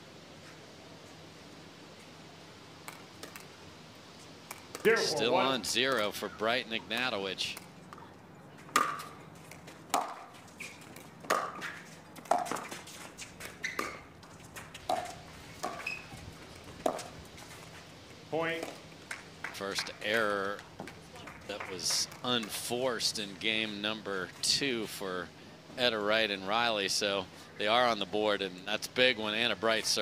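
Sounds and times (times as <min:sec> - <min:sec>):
people calling out: 0:04.8 - 0:05.6.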